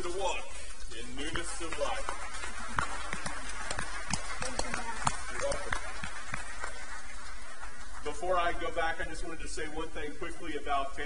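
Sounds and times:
congregation applauding: 1.0 - 8.8.

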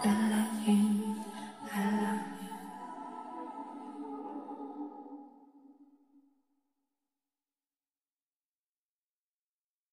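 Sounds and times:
woman singing a cappella: 0.0 - 5.3.

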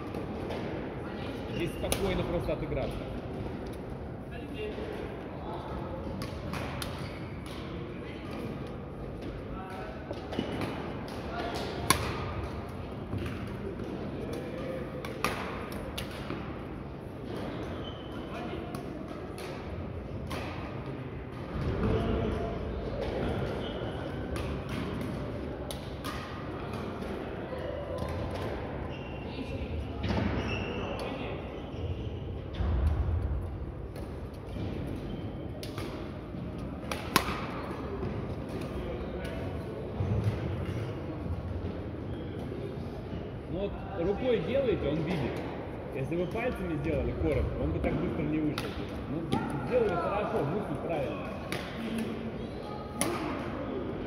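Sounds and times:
rackets hitting shuttlecocks: 6.2 - 7.8, 10.2 - 16.6, 33.9 - 39.5, 47.2 - 50.5, 51.3 - 52.2.

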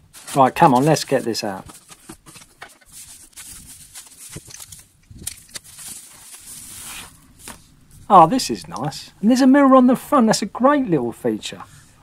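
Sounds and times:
plastic wrap rustling and crinkling: 0.0 - 8.1.

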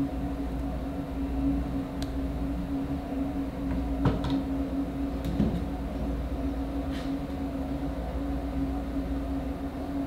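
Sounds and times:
mechanical room hum: 0.0 - 10.0.

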